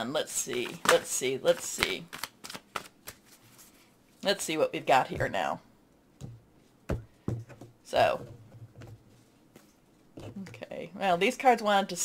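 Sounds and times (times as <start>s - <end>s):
cards being shuffled: 0.4s - 3.8s.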